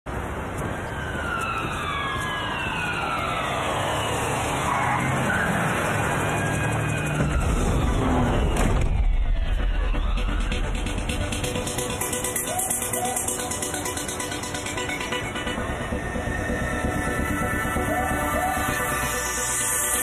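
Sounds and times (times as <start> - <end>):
street traffic: 0.1 - 20.0
falling siren-like tones: 0.8 - 20.0.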